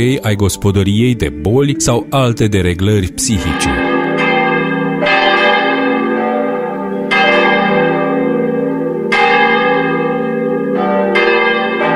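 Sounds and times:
church bells ringing: 0.0 - 11.9.

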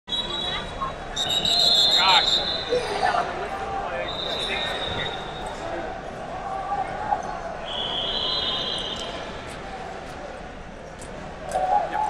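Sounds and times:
crowd chatter: 0.1 - 12.0
referee whistle blasts: 1.2 - 2.7, 4.1 - 5.5, 7.6 - 9.2.

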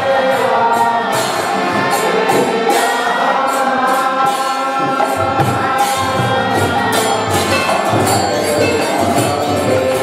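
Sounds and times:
hand cymbals striking: 0.0 - 10.0
voices chanting: 0.0 - 10.0.

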